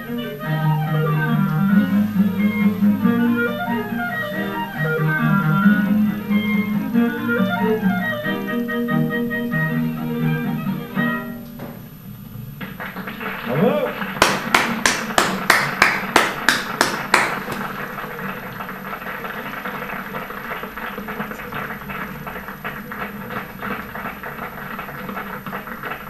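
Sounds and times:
audience applause: 0:00.0 - 0:08.5, 0:12.6 - 0:26.0
loud close hand clapping: 0:12.6 - 0:26.0.

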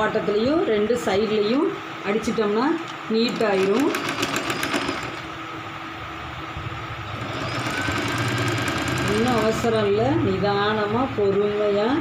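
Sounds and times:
electric sewing machine running: 0:03.2 - 0:05.4, 0:07.0 - 0:10.0.

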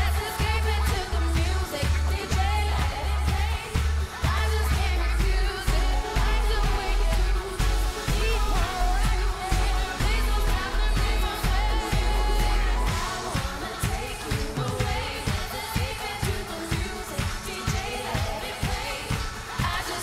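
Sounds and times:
steady drum beat: 0:00.0 - 0:20.0
woman singing: 0:00.0 - 0:20.0.

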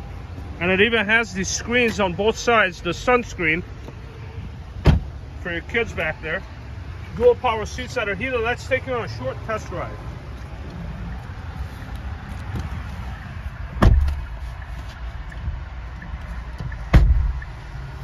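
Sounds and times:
steady low rumble: 0:00.0 - 0:18.0
car doors shutting: 0:03.8 - 0:05.2, 0:13.7 - 0:15.6, 0:16.2 - 0:17.6.

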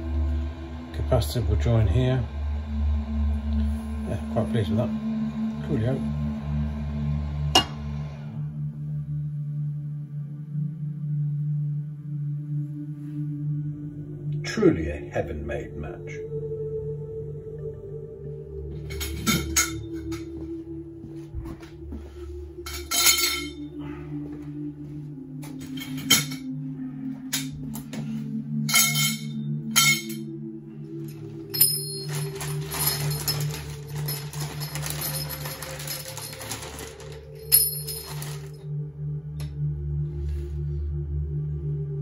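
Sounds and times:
droning background music: 0:00.0 - 0:42.0
copper pipes clinking: 0:28.6 - 0:38.6
pipes rattling and scraping: 0:31.0 - 0:38.7.

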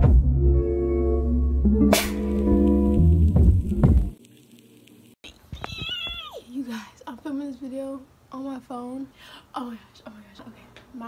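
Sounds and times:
intro music: 0:00.0 - 0:04.2
woman squealing: 0:05.3 - 0:06.6.

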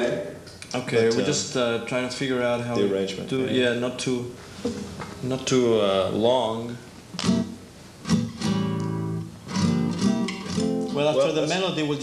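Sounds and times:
acoustic guitar plucked notes: 0:07.2 - 0:11.3.

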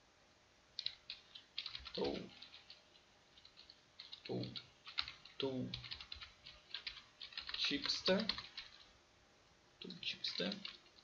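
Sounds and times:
keyboard and mouse clicks: 0:00.8 - 0:08.9.

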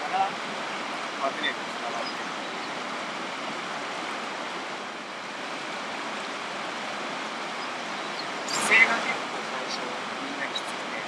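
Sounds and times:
river rapids rushing: 0:00.0 - 0:11.0.

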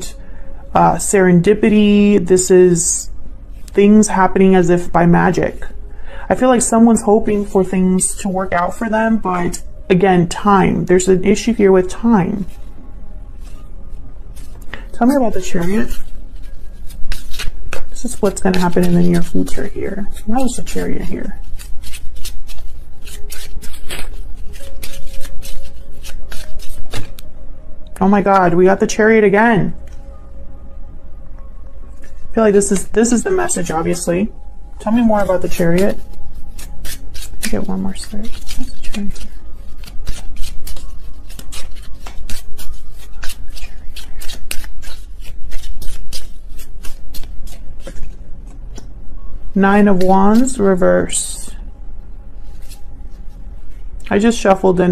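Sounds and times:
cards being shuffled: 0:11.4 - 0:12.7, 0:14.3 - 0:27.3, 0:34.9 - 0:48.9, 0:52.4 - 0:54.2.

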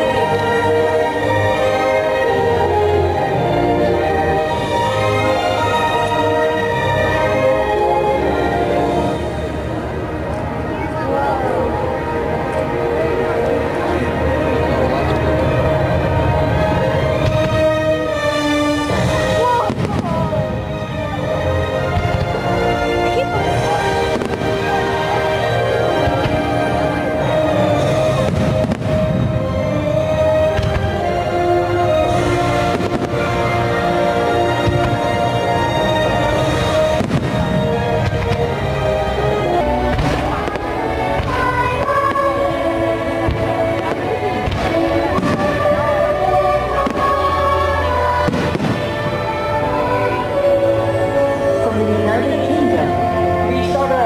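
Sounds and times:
loud show music: 0:00.0 - 0:54.0
fireworks bursting: 0:15.5 - 0:50.8.

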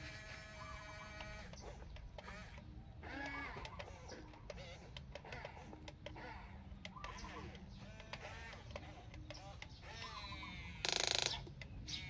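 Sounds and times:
electric gear motors whining: 0:00.0 - 0:12.0.

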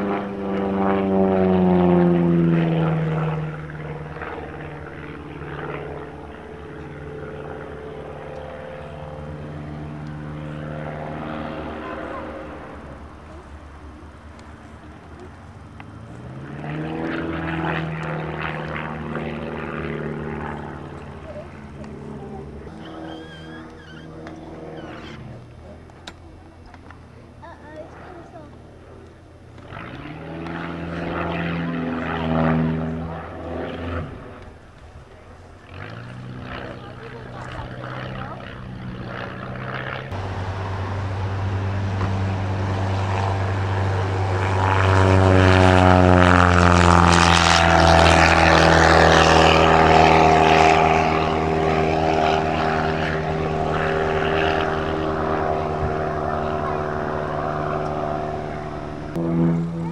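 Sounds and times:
biplane low pass: 0:00.0 - 0:59.9
propeller aircraft engines: 0:00.0 - 0:59.9.

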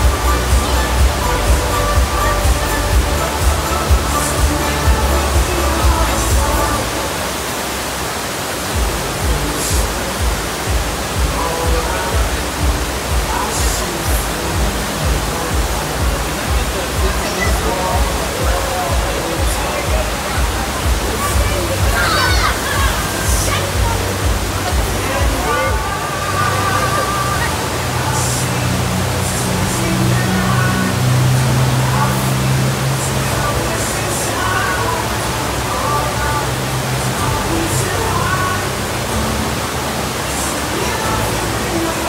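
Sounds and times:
music with bass beat: 0:00.0 - 0:06.9, 0:08.7 - 0:27.5
people's voices: 0:00.0 - 0:42.0
rushing pumped water: 0:00.0 - 0:42.0.

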